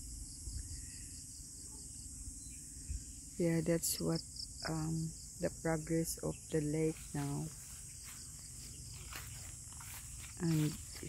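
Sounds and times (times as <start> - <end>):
high-pitched insect chorus: 0.0 - 11.0.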